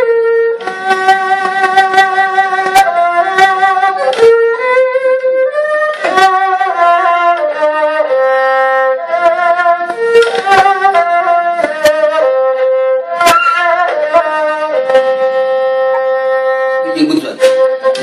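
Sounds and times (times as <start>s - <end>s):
bowed fiddle slow melody: 0.0s - 18.0s.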